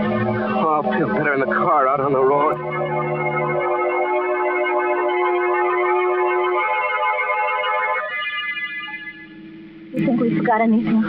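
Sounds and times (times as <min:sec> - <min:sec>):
organ chords: 0:00.0 - 0:11.0.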